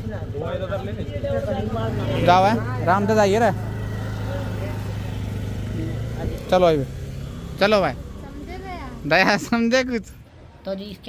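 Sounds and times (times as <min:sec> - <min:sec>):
scooter engine idling: 0:00.0 - 0:10.5.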